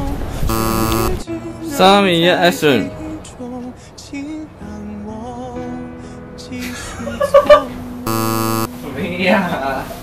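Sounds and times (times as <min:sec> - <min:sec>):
soft background music: 0:00.0 - 0:10.0
flat electronic buzzer: 0:00.5 - 0:01.2, 0:08.1 - 0:08.7
man laughing loudly: 0:06.7 - 0:07.7.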